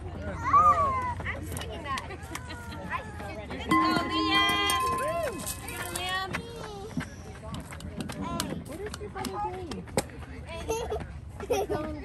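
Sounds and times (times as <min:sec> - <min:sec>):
spectators calling out and cheering: 0:02.2 - 0:06.1.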